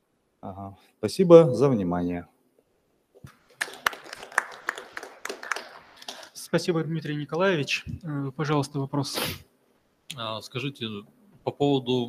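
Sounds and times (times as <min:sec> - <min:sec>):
small audience clapping: 0:03.2 - 0:06.7.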